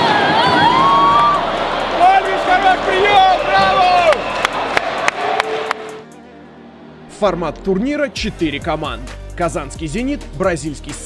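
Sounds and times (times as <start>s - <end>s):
crowd noise: 0.0s - 7.1s
sharp hand claps: 3.6s - 6.0s.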